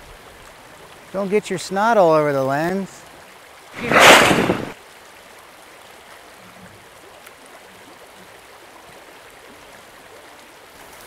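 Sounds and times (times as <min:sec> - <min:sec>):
creek rushing: 0:03.8 - 0:04.8.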